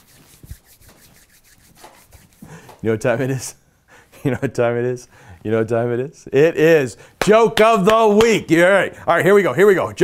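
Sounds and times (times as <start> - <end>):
hands rubbing together: 0.0 - 2.8
man speaking: 4.3 - 10.0.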